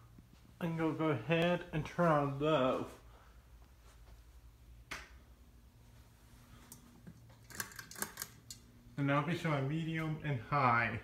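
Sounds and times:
ceiling fan humming: 0:00.0 - 0:11.0.

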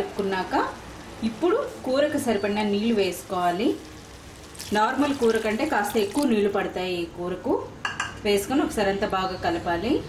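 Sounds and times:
woman speaking: 0:04.7 - 0:10.0.

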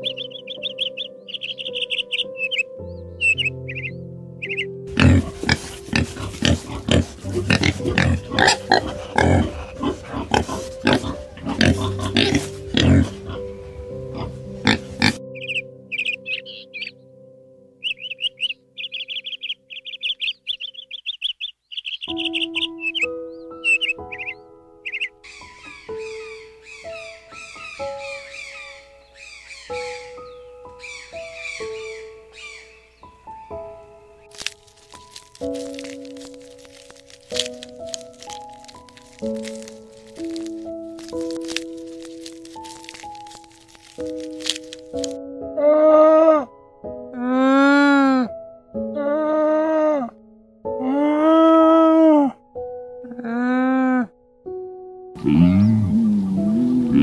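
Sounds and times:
many birds calling: 0:00.0 - 0:17.0, 0:17.8 - 0:45.2
soft background music: 0:00.0 - 0:57.0.

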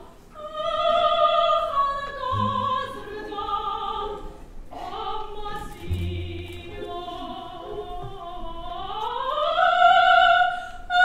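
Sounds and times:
soprano singing: 0:00.0 - 0:11.0.

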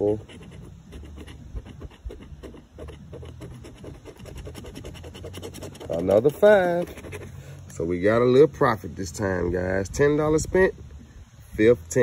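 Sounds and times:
coin scraping lottery ticket: 0:00.0 - 0:07.3.

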